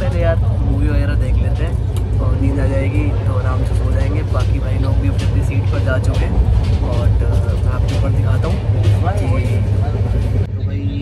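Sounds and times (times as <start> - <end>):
indistinct voices: 0.0 - 11.0
train coach rumbling: 0.0 - 11.0.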